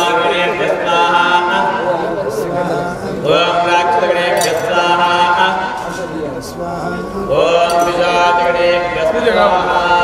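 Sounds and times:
man chanting mantras: 0.0s - 10.0s.

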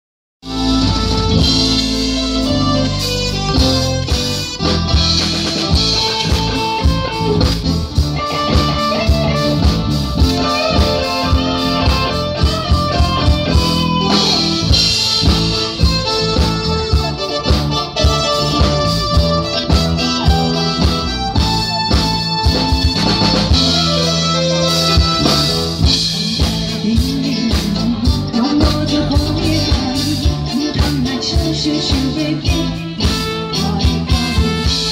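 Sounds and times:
drum kit beat: 0.4s - 34.9s
guitar: 0.4s - 34.9s
melodic lead line: 0.4s - 34.9s.

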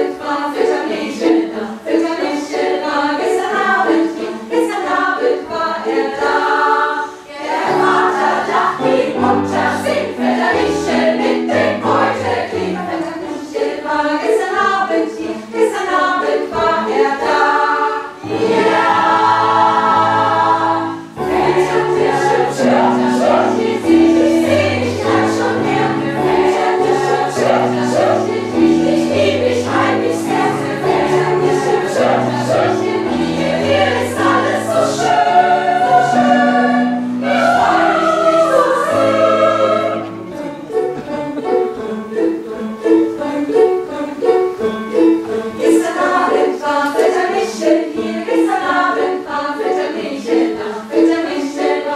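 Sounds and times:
mixed choir singing in harmony: 0.0s - 51.9s.

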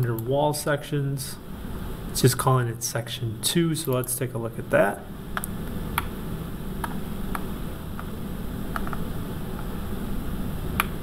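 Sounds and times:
room noise hum and hiss: 0.0s - 11.0s
computer mouse clicks: 6.8s - 8.1s, 8.7s - 9.0s, 10.7s - 11.0s.

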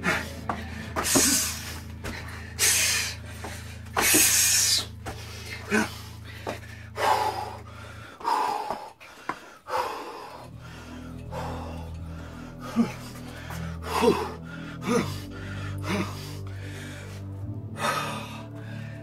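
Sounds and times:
background music: 0.0s - 19.0s
man breathing heavily: 0.0s - 19.0s.

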